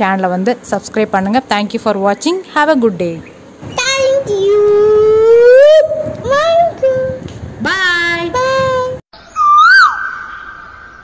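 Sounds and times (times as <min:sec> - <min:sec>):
whistled bird-like call: 0:09.2 - 0:11.0.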